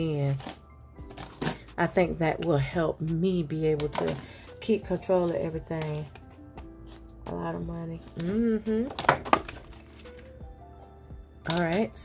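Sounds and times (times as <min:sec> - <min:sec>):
faint background music: 0:00.0 - 0:12.0
coins clattering: 0:00.1 - 0:01.8.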